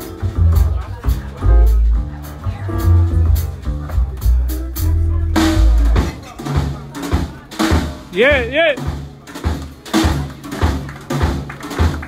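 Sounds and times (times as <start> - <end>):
double bass plucking deep notes: 0.0 - 6.2
drum kit played with sticks: 0.0 - 12.0.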